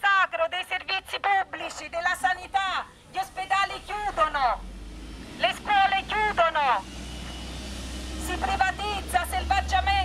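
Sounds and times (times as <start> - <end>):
woman speaking through megaphone: 0.0 - 4.6, 5.4 - 6.9, 8.2 - 10.0
bus and traffic rumble: 0.2 - 10.0.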